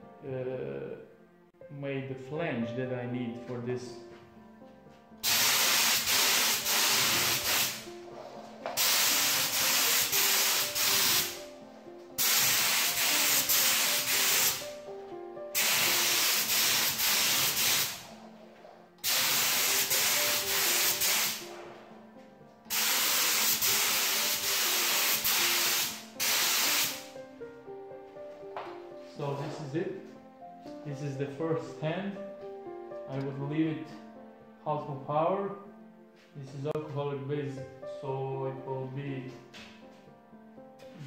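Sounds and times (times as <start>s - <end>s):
spray gun hissing: 5.2s - 7.9s, 8.8s - 11.5s, 12.2s - 14.7s, 15.6s - 18.1s, 19.0s - 21.4s, 22.7s - 27.1s.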